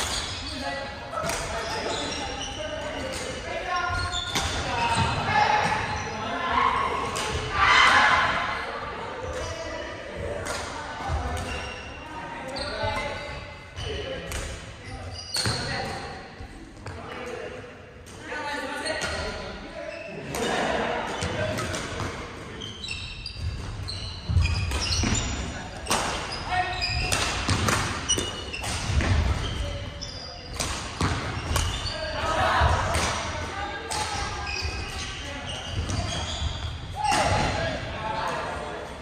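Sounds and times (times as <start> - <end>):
players' voices: 0.0 - 39.0
shoes squeaking on wooden floor: 3.7 - 6.2, 22.6 - 32.2, 34.4 - 37.5
racket hitting shuttlecock: 27.0 - 29.5.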